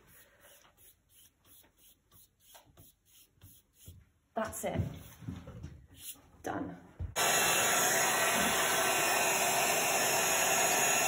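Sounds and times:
paintbrush strokes on paper: 0:00.0 - 0:04.0.

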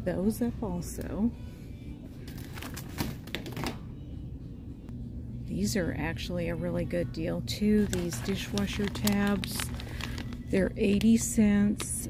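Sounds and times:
low store hum: 0:00.0 - 0:12.0.

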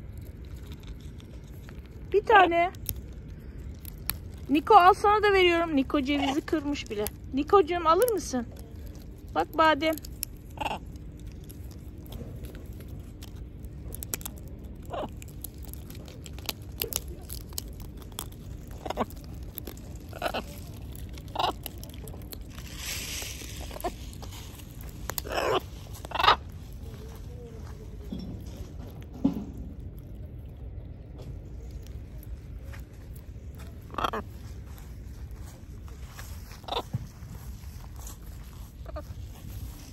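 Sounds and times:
parrots cracking nut shells: 0:00.0 - 0:34.6
parrots chewing nuts: 0:00.0 - 0:39.9.

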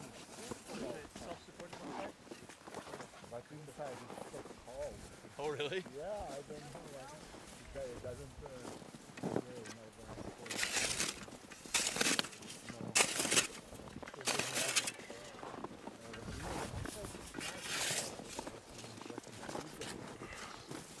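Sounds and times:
shovel scraping packed snow: 0:10.1 - 0:21.0.

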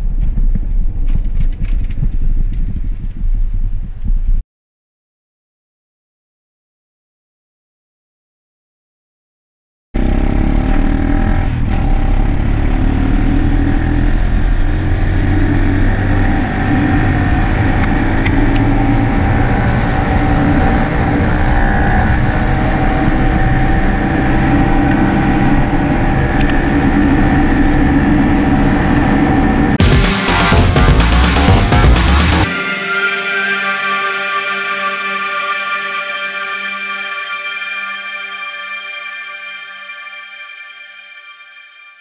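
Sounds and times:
dirt bike engine running: 0:10.0 - 0:20.6, 0:29.8 - 0:32.6.

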